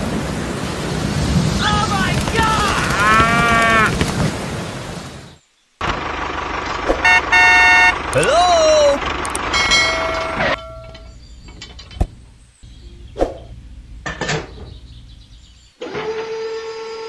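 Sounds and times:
engine running noise: 5.8 - 16.2
horn toots: 6.9 - 11.0.

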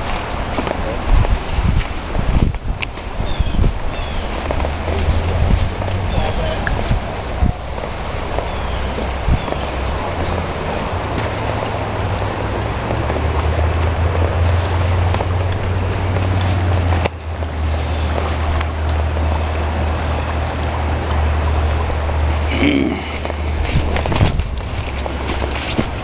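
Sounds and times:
deep low rumble: 0.0 - 26.0
river rushing through rapids: 0.0 - 26.0.

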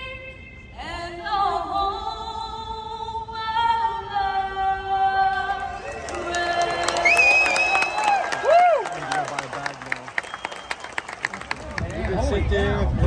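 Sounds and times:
sung anthem: 3.8 - 11.8
crowd cheering and applauding: 5.5 - 12.5
long whistle: 6.8 - 8.6, 10.2 - 11.1.

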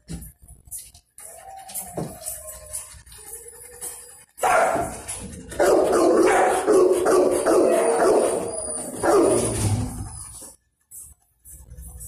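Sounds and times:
dogs barking: 4.4 - 10.4.

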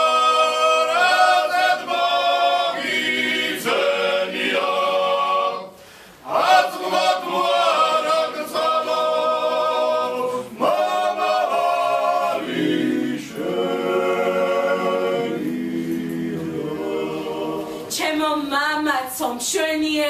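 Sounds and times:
men's choir singing unaccompanied: 0.0 - 18.0.

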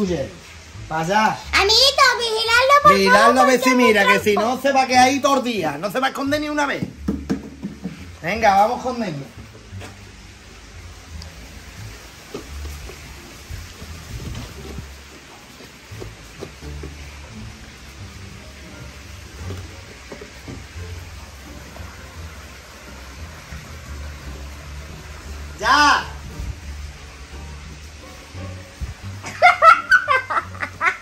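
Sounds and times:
steady hiss: 0.0 - 31.0.

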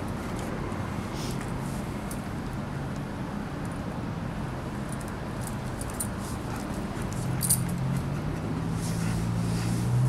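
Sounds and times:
dog collar clinking: 7.1 - 7.9.

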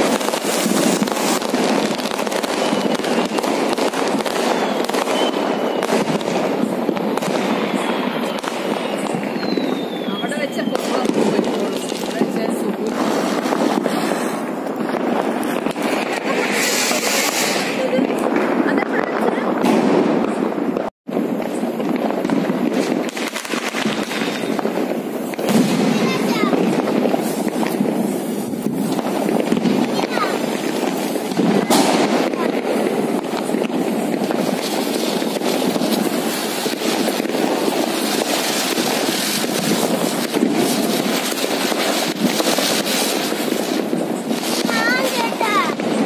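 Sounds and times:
firecrackers crackling: 0.0 - 46.0.

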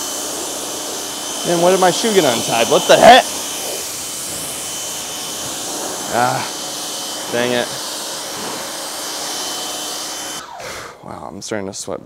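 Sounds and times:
pressure washer spraying water: 0.0 - 10.5.

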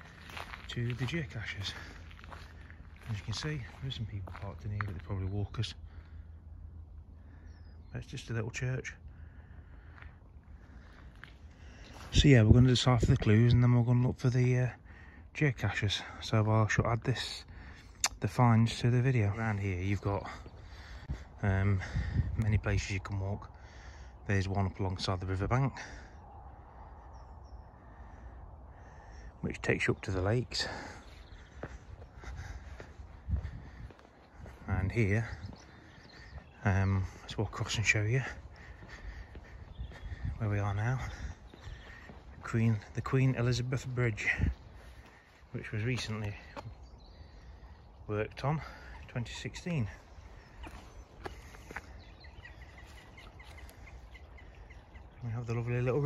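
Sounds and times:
faint bird chirps: 0.0 - 12.2, 25.6 - 56.0
steady low rumble: 0.0 - 56.0
small bird chirping: 50.0 - 55.7.

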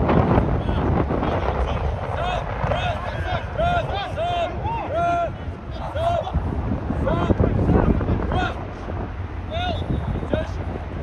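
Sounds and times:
wind rumble on microphone: 0.0 - 11.0
players shouting calls: 1.6 - 8.8, 9.5 - 10.6.

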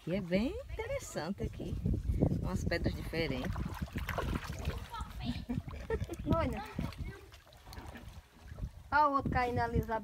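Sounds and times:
river water splashing: 3.2 - 9.0.

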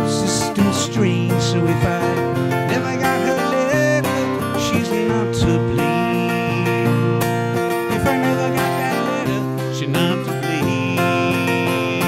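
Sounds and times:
acoustic guitars playing country music: 0.0 - 12.0.

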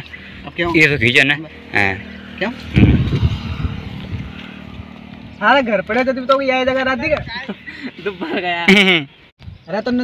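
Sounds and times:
wind buffeting microphone: 0.3 - 7.6.

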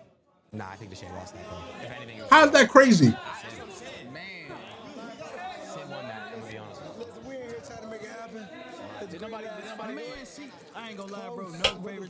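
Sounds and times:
background chatter: 2.3 - 3.2.

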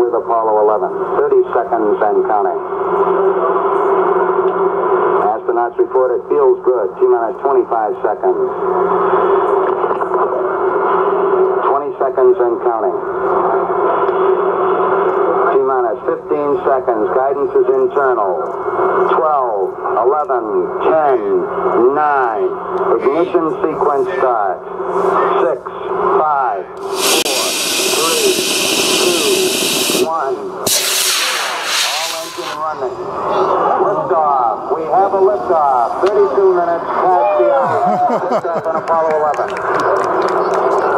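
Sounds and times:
steady radio hiss and hum: 0.0 - 37.1
loud high vapour hiss: 26.8 - 32.9
announcer's voice: 31.8 - 39.4.

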